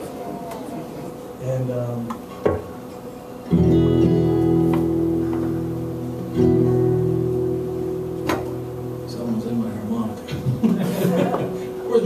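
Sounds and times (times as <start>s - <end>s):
acoustic guitar chords ringing: 3.4s - 12.0s.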